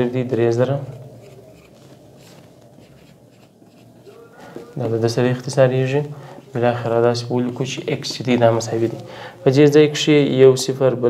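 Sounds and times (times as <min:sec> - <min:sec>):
man speaking: 0:00.0 - 0:01.4, 0:04.0 - 0:11.0
marker pen writing on whiteboard: 0:00.4 - 0:05.1.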